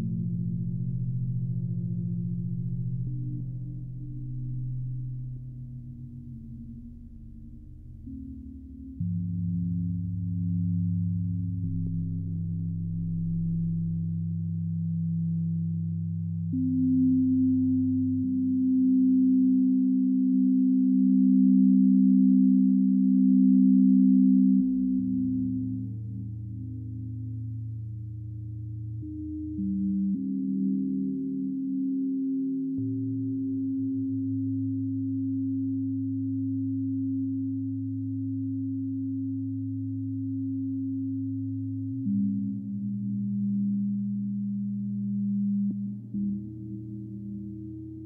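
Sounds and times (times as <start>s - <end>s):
synthesizer sine-wave tones: 0.0s - 48.0s.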